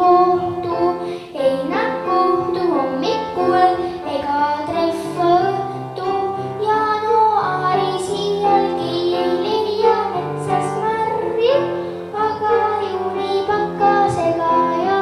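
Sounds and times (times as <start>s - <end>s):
girl singing into a microphone: 0.0s - 15.0s
instrumental accompaniment: 0.0s - 15.0s.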